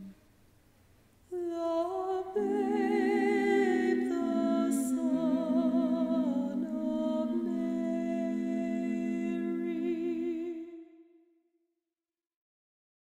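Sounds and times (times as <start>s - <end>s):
women singing in close harmony: 1.3s - 11.0s.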